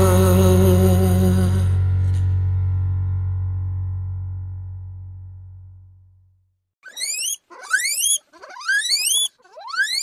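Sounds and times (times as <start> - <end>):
guinea pig squealing: 6.8 - 10.0.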